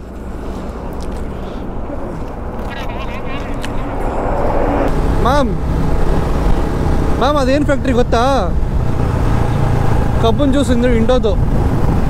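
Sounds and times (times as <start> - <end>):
highway traffic: 0.0 - 12.0
vehicle engine rumble: 0.0 - 12.0.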